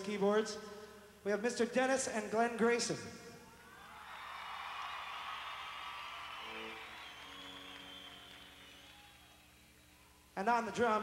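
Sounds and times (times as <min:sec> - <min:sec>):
audience cheering and clapping: 0:03.6 - 0:10.1
high whistles: 0:03.6 - 0:10.3.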